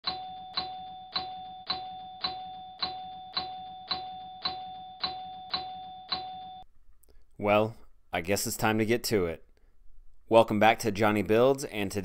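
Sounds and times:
bell-like ding: 0.0s - 6.6s.

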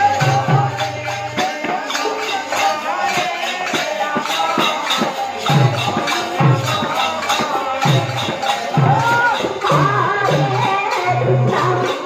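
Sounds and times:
hand cymbals jingling: 0.0s - 12.0s
hand-beaten barrel drums: 0.0s - 12.0s.

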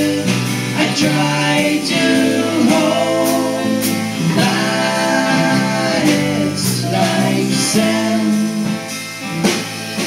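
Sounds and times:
person singing: 0.0s - 8.8s
live rock band playing: 0.0s - 10.0s.

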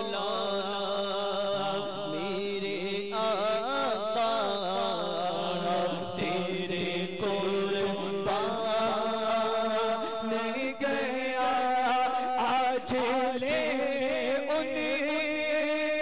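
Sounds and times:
man chanting melodically: 0.0s - 16.0s.

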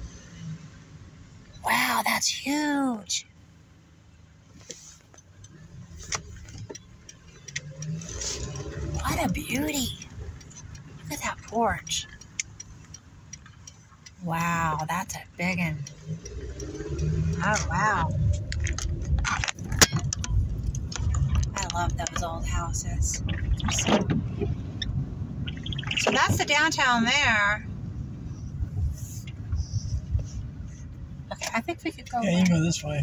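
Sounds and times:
car engine and road noise: 0.0s - 33.0s
light ticks: 4.6s - 23.8s, 28.6s - 32.6s.

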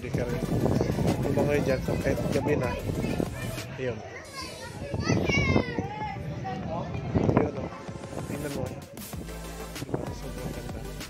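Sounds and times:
children playing in water: 0.7s - 6.6s
child's high-pitched rising call: 4.2s - 6.0s.

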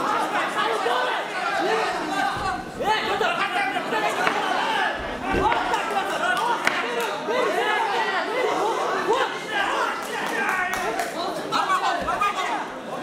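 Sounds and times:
crowd shouting and talking: 0.0s - 13.0s.

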